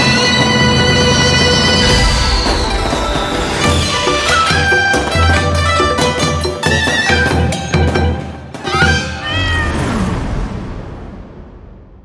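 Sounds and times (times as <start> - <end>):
music: 0.0 - 10.4
cat meowing: 9.2 - 9.8.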